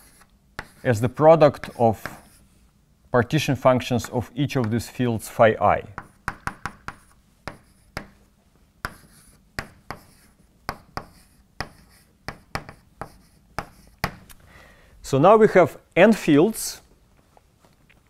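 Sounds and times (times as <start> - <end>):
chalk tapping on blackboard: 0.0 - 0.8, 1.6 - 2.4, 5.9 - 8.2, 8.8 - 14.2
chalk scraping: 0.0 - 2.6.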